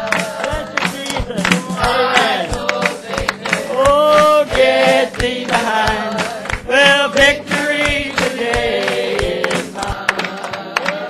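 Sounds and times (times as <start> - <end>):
congregation singing gospel song: 0.0 - 11.0
hand clapping: 0.0 - 11.0.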